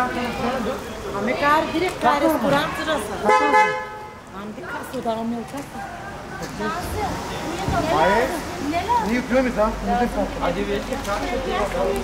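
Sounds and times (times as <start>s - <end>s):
car horn honk: 3.2s - 4.2s.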